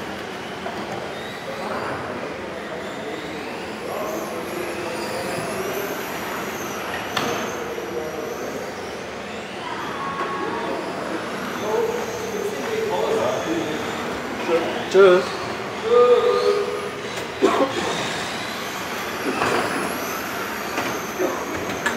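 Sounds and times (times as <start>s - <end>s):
model car motors whining: 0.0s - 21.9s.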